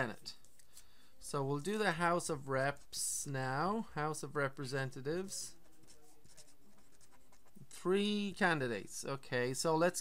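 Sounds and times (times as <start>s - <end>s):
man speaking: 1.2s - 5.6s
marker scratching on paper: 5.3s - 7.8s.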